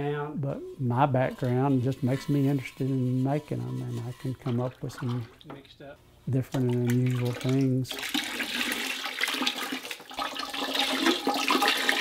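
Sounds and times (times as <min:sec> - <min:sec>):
glaze pouring and splashing: 0:01.3 - 0:05.6, 0:06.4 - 0:12.0
liquid trickling into bucket: 0:04.4 - 0:05.6, 0:06.4 - 0:12.0.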